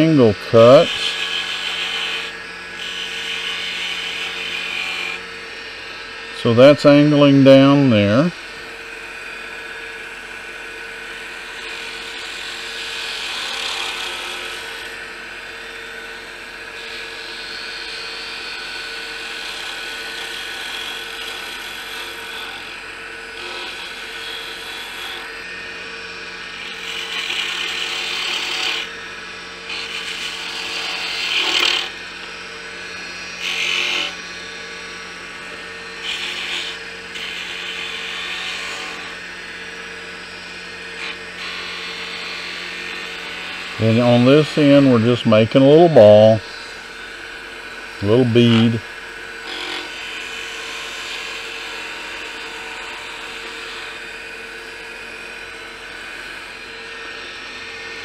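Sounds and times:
tool scraping spinning wood: 0.0s - 8.6s, 11.1s - 39.3s, 40.6s - 51.7s
wood lathe motor hum: 0.0s - 58.0s.

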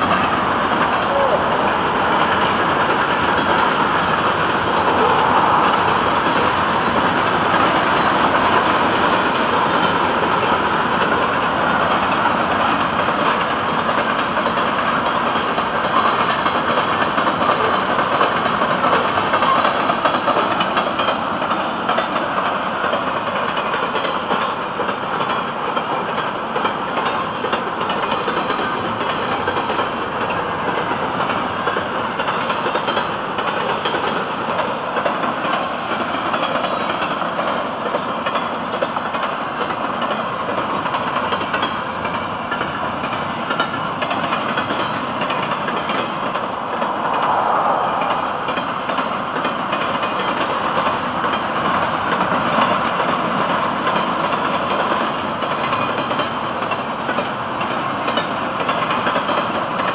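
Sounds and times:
freight cars rolling on rails: 0.0s - 59.9s.

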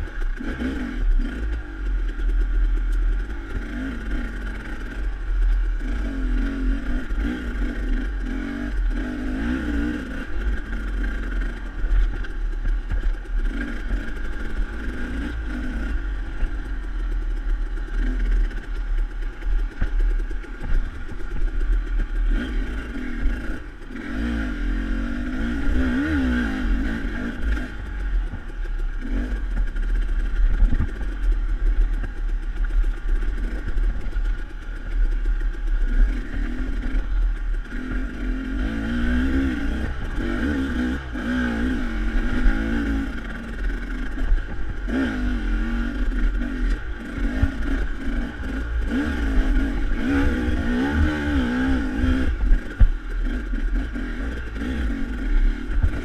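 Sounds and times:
dirt bike engine revving: 0.0s - 56.0s
low rumble: 0.0s - 56.0s.

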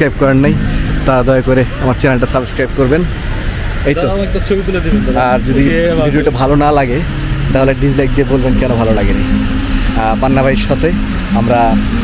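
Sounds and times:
man talking: 0.0s - 3.2s, 3.8s - 12.0s.

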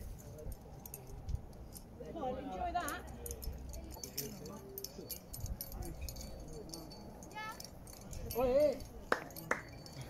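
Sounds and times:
climbing hardware clinking: 0.0s - 10.0s
faint indistinct voices: 0.0s - 10.0s.

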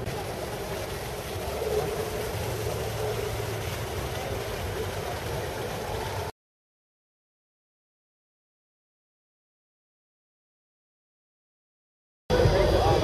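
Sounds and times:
murmur of crowd voices: 0.0s - 6.3s, 12.3s - 13.0s.

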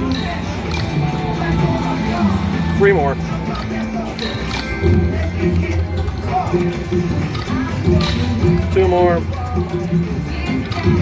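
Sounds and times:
casino background noise: 0.0s - 11.0s
electronic slot machine music: 0.0s - 11.0s.

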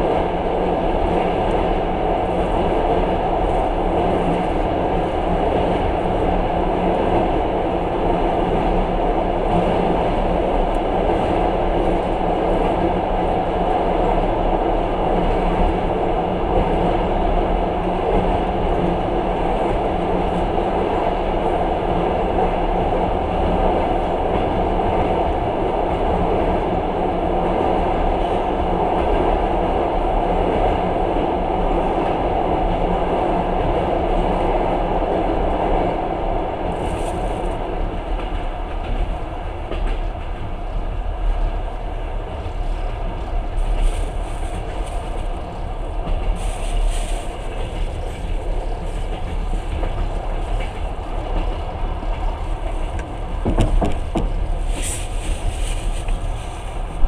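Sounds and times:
train wheels rumbling on bridge: 0.0s - 57.0s.

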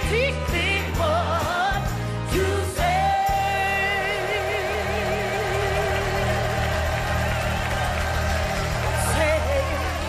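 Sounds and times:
woman singing gospel: 0.0s - 6.7s, 8.8s - 10.0s
live band playing: 0.0s - 10.0s.

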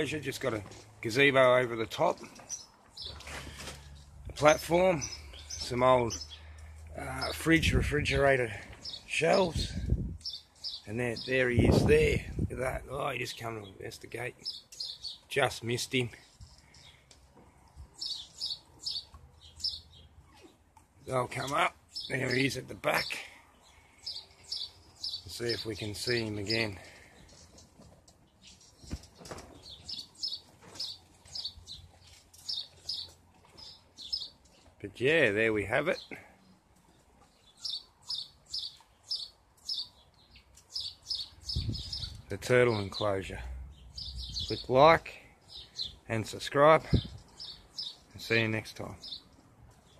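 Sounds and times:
small bird chirping: 8.8s - 11.4s, 14.4s - 15.4s, 18.0s - 20.7s, 21.4s - 27.6s, 28.2s - 34.8s, 36.0s - 43.0s, 43.7s - 44.8s, 46.9s - 49.9s.

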